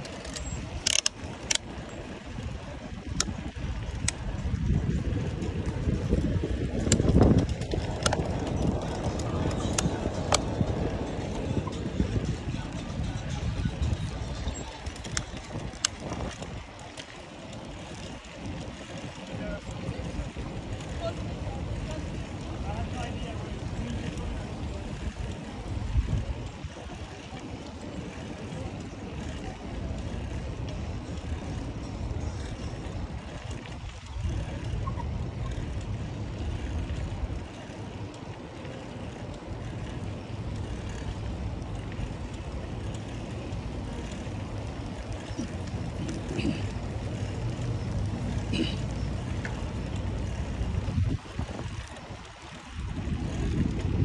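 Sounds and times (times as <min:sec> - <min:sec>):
bicycle rolling over brick paving: 0:00.0 - 0:54.0
wind rumbling on microphone: 0:00.0 - 0:54.0.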